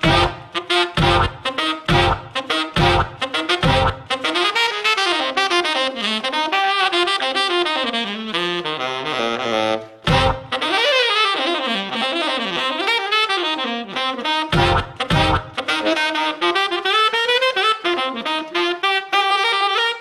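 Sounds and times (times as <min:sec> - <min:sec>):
saxophone jazz runs: 0:00.0 - 0:20.0
low thump: 0:10.1 - 0:10.6.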